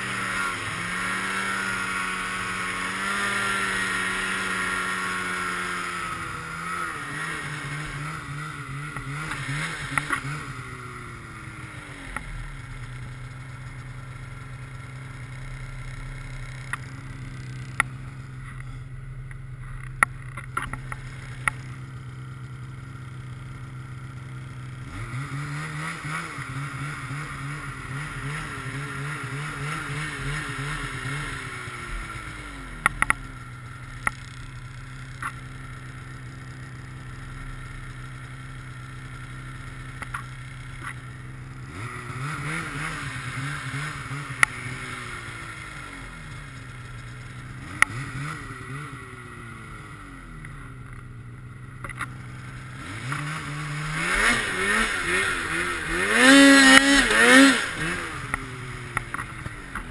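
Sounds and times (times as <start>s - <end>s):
snowmobile engine revving: 0.0s - 59.9s.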